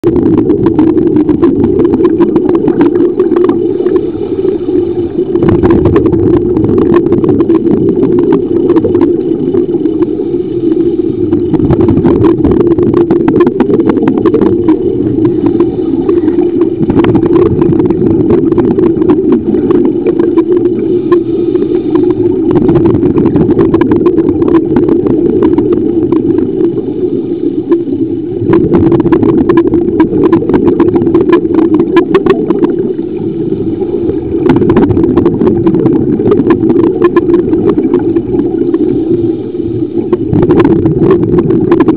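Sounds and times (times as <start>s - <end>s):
loud underwater drone: 0.0s - 41.9s
regulator bubbling: 0.0s - 41.9s.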